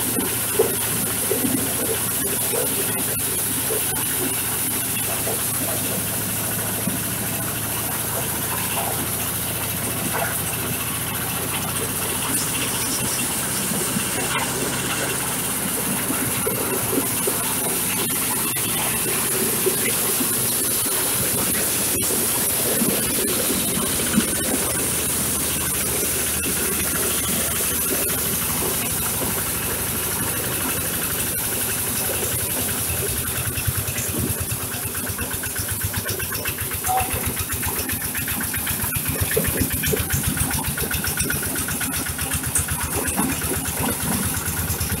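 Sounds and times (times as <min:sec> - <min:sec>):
corn cobs being threshed: 0:00.0 - 0:45.0
diesel engine drone: 0:00.0 - 0:45.0.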